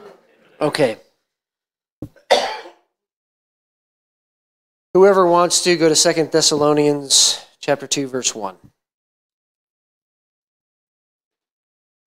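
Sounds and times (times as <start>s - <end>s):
man clearing his throat: 2.2s - 2.9s.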